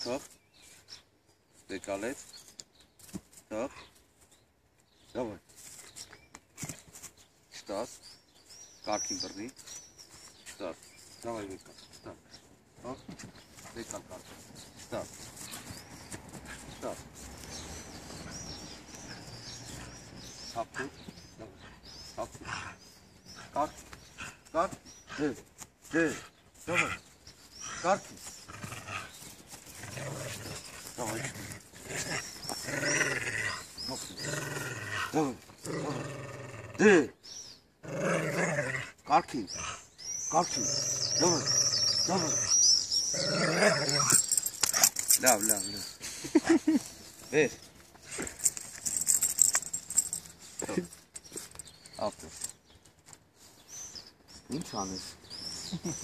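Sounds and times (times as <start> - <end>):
small birds chirping: 0.0 - 56.0
dog growling: 29.9 - 36.9, 40.6 - 44.3.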